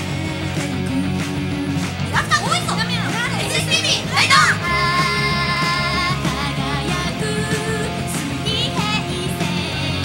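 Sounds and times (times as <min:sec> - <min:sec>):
pop backing music: 0:00.0 - 0:10.0
high-pitched voices calling out: 0:02.0 - 0:06.9.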